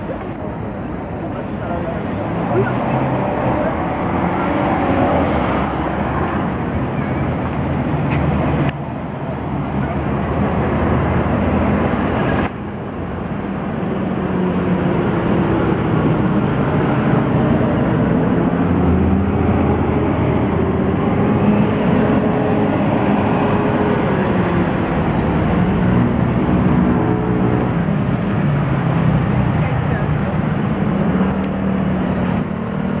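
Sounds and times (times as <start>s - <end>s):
people's voices: 0.0s - 7.3s, 29.4s - 31.5s
traffic and engines running: 0.0s - 33.0s.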